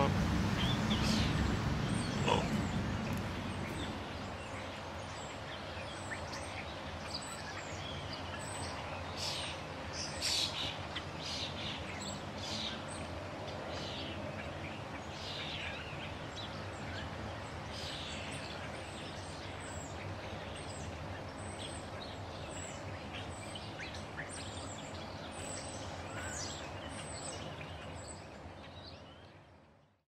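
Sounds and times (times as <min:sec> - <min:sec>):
background hiss: 0:00.0 - 0:28.5
small birds chirping: 0:00.0 - 0:30.0.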